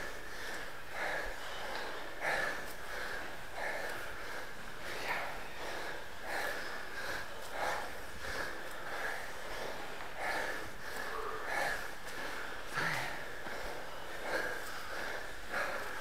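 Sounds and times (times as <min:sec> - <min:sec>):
person breathing hard: 0:00.0 - 0:16.0.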